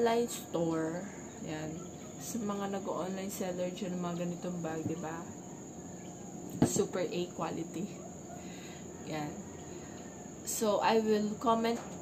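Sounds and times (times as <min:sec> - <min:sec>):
woman speaking: 0:00.0 - 0:05.4, 0:06.5 - 0:08.0, 0:09.0 - 0:09.5, 0:10.4 - 0:12.0.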